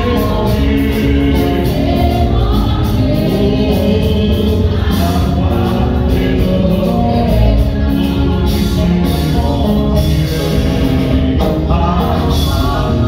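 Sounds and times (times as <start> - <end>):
gospel worship music: 0.0 - 13.0.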